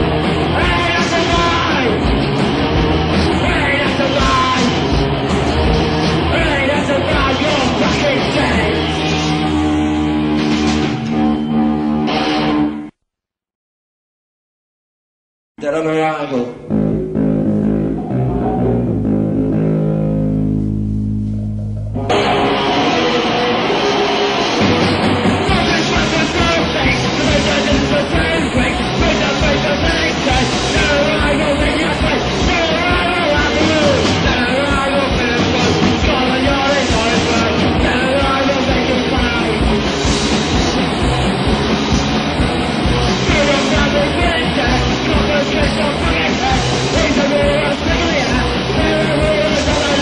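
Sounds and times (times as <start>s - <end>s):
punk rock band playing: 0.0s - 12.9s, 16.6s - 50.0s
electric guitar and bass chord ringing: 4.5s - 13.0s, 16.5s - 50.0s.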